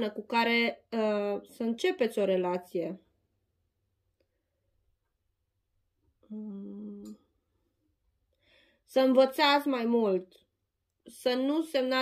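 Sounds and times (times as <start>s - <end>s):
woman humming: 6.2s - 7.3s.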